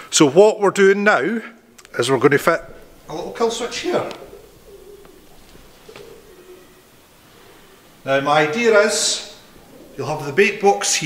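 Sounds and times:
bird calling faintly: 1.8s - 11.0s.

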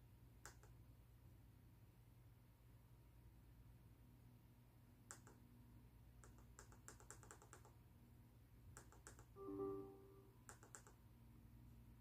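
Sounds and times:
laptop keys clicking: 5.1s - 5.4s, 6.2s - 7.8s, 8.8s - 9.4s, 10.5s - 11.0s
short tone: 9.4s - 10.4s.

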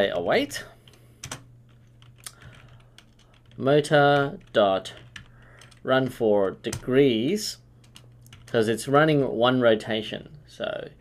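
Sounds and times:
typing on computer keyboard: 1.2s - 7.0s, 7.8s - 8.6s.

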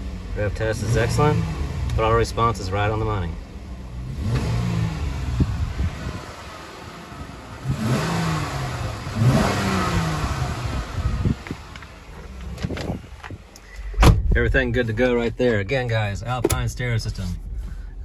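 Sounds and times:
car engine revving: 0.0s - 17.7s.

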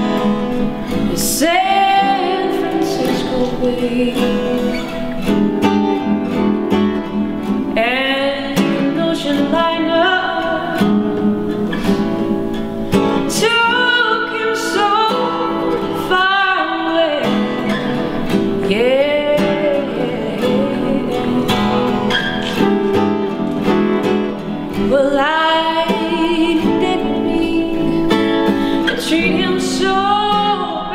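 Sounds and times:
woman singing: 0.0s - 22.7s, 24.7s - 30.9s
acoustic guitar strummed and picked: 0.0s - 30.9s.

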